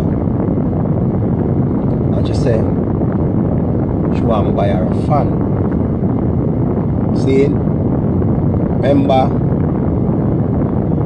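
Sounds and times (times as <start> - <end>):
low rumble inside car cabin: 0.0 - 11.0.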